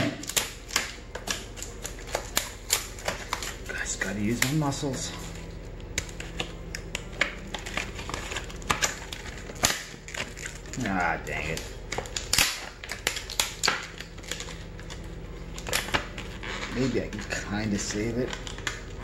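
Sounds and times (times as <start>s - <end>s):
plastic packaging crackling and snapping: 0.0s - 19.0s.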